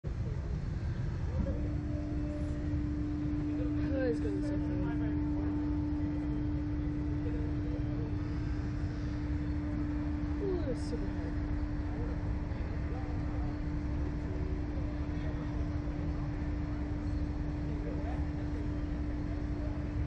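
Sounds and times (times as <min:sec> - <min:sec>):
constant low rumble: 0:00.0 - 0:20.0
ride machinery humming: 0:00.0 - 0:20.0.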